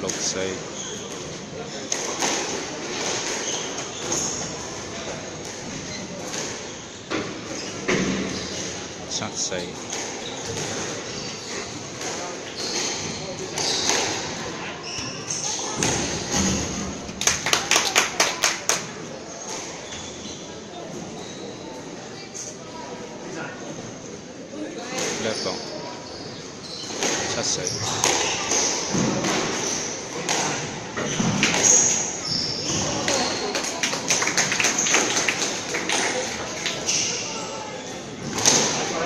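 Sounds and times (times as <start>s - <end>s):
court shoes squeaking: 0.0s - 17.4s, 19.2s - 22.6s, 24.6s - 39.0s
sharp taps ringing in squash court: 9.7s - 14.4s, 26.9s - 37.6s.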